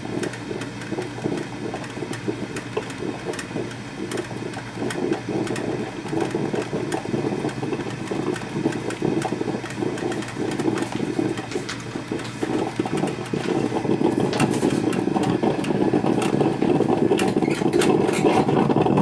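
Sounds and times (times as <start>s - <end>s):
coffee maker bubbling and sputtering: 0.0s - 19.0s
crackles and pops: 0.1s - 19.0s.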